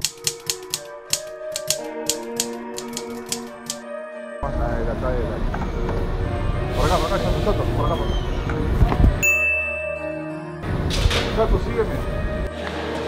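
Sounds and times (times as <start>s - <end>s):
sharp irregular clicks: 0.0s - 3.8s
held musical chord: 0.8s - 7.8s, 9.2s - 10.7s.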